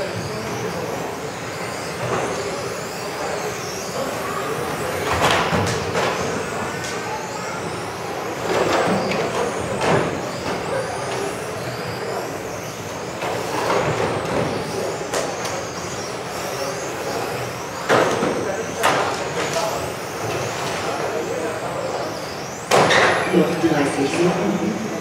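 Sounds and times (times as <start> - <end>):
rc car motors whining: 0.0 - 25.0.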